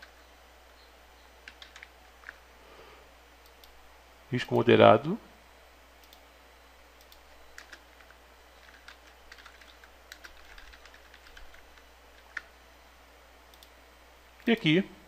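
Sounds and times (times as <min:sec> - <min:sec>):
typing on computer keyboard: 0:01.4 - 0:02.4, 0:07.0 - 0:12.5.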